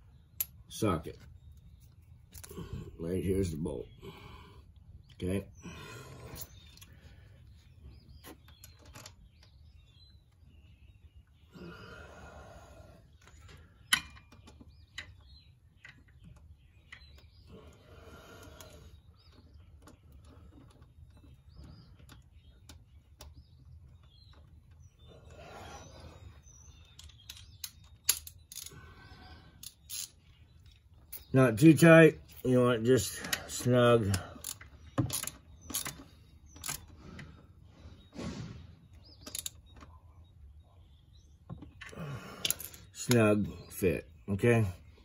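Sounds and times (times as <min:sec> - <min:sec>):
small metal clicks: 0:26.8 - 0:28.8, 0:29.6 - 0:31.3, 0:33.2 - 0:37.3, 0:39.2 - 0:39.9, 0:41.5 - 0:43.2.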